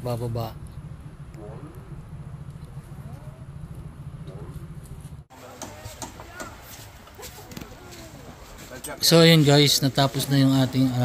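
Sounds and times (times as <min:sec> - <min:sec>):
low steady rumble: 0:00.0 - 0:05.3.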